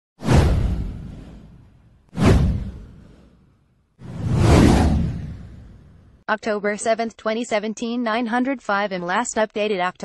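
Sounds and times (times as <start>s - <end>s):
whoosh sound effect: 0.2s - 6.1s
deep low rumble: 4.1s - 6.2s.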